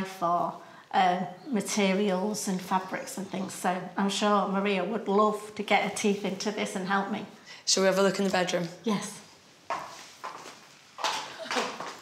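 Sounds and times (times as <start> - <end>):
footsteps on tiled floor: 8.2 - 12.0.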